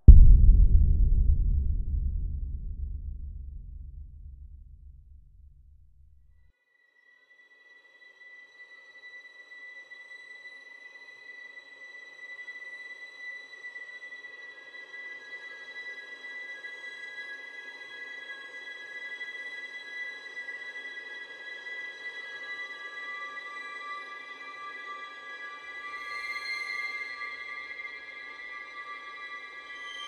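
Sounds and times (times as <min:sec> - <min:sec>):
low rumble: 0:00.0 - 0:06.0.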